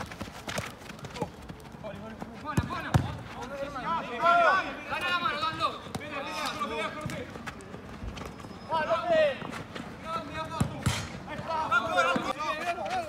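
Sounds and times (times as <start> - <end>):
football being kicked: 2.5 - 3.2, 10.5 - 11.5.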